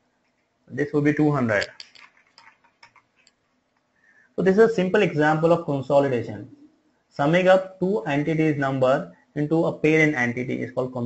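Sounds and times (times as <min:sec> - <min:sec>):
computer keyboard clicks: 0:01.6 - 0:03.4.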